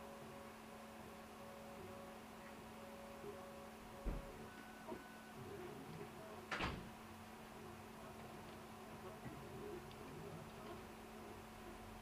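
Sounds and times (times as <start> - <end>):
printer hum: 0.0 - 12.0.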